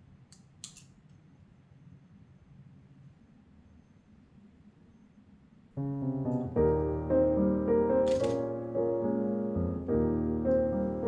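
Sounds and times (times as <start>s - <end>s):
soft piano music: 5.8s - 11.0s
camera shutter click: 8.0s - 8.5s.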